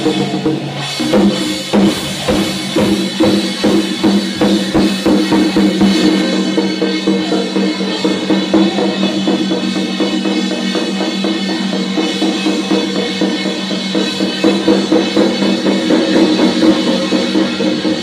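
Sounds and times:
drums beaten fast: 0:00.0 - 0:18.0.

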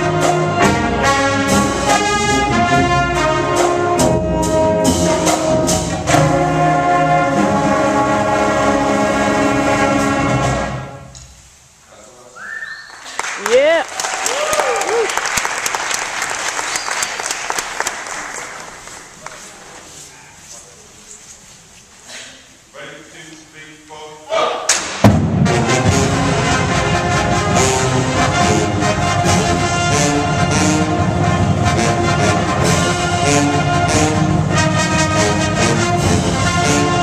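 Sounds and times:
brass band sustained chord: 0:00.0 - 0:11.1, 0:25.2 - 0:37.0.

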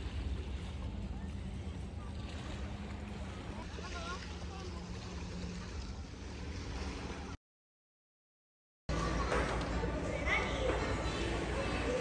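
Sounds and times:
faint distant voices: 0:00.0 - 0:07.4, 0:08.9 - 0:12.0
small waves on shore: 0:00.0 - 0:07.4.

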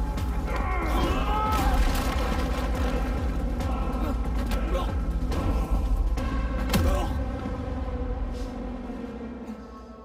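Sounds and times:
deep rumbling film score: 0:00.0 - 0:10.0.

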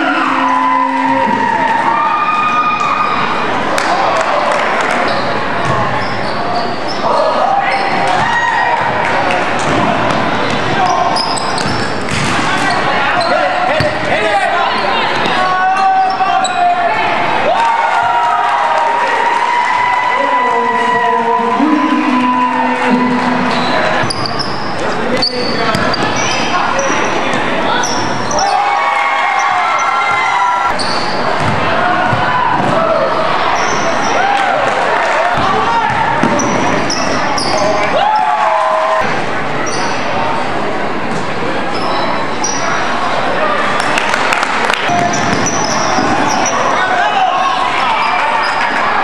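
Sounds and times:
voices and shouts echoing: 0:00.0 - 0:49.0
sneakers squeaking: 0:04.9 - 0:08.9, 0:09.6 - 0:16.8, 0:21.8 - 0:28.7, 0:29.3 - 0:34.2, 0:35.4 - 0:38.3, 0:39.6 - 0:40.2, 0:41.2 - 0:42.9, 0:44.9 - 0:46.8.

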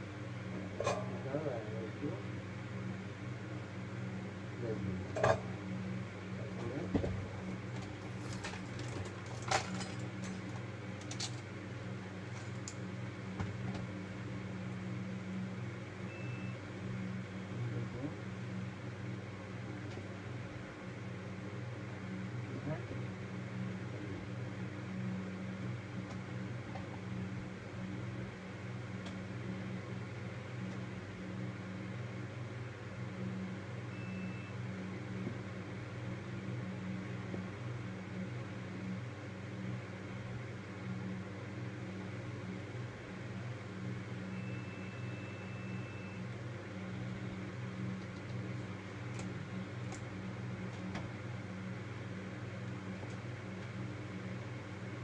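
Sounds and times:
low machine hum: 0:00.0 - 0:55.0
short high beep: 0:34.0 - 0:34.5, 0:44.4 - 0:46.2.

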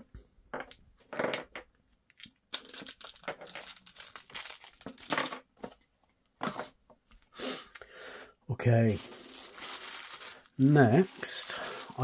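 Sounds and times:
plastic bag crinkling: 0:02.5 - 0:05.4, 0:08.8 - 0:12.0.

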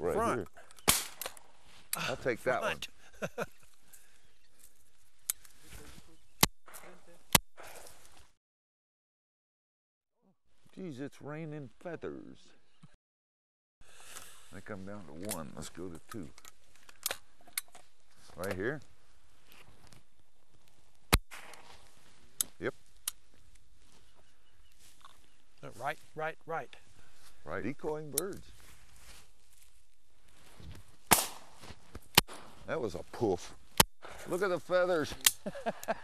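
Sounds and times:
faint sharp cracks: 0:00.6 - 0:02.0, 0:20.6 - 0:23.7, 0:31.0 - 0:32.7
shotgun shots: 0:00.8 - 0:01.5, 0:21.1 - 0:21.8, 0:31.1 - 0:31.6.

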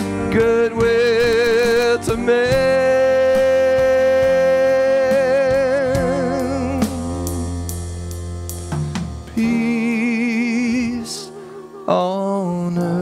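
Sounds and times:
lead line with vibrato: 0:00.0 - 0:13.0
live worship band music: 0:00.0 - 0:13.0.

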